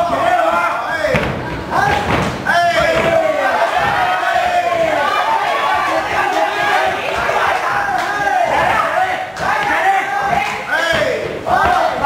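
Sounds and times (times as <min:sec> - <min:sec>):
people shouting loudly: 0:00.0 - 0:12.0.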